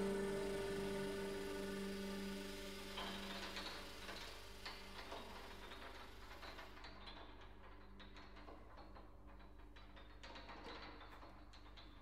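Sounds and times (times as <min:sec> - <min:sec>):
chamber music: 0:00.0 - 0:04.6.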